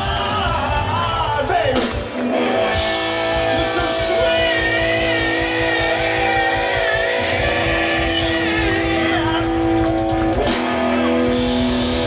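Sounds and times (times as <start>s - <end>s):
bass guitar: 0.0s - 12.0s
drums: 0.0s - 12.0s
electric guitar sustained notes: 2.1s - 12.0s.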